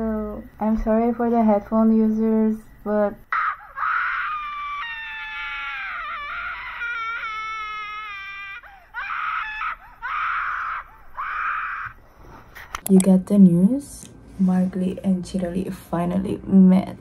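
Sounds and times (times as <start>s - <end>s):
woman screaming excitedly: 3.3s - 12.0s.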